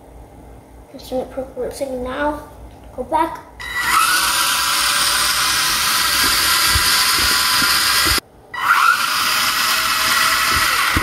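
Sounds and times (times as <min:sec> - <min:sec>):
toy car motors whining: 0:03.6 - 0:11.0.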